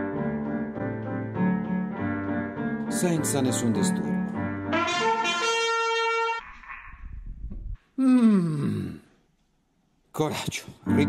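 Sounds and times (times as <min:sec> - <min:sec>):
trumpet blaring held note: 0:04.7 - 0:06.4.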